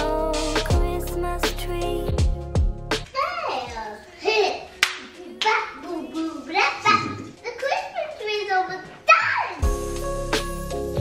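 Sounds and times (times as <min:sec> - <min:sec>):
young child talking: 0:03.1 - 0:09.6.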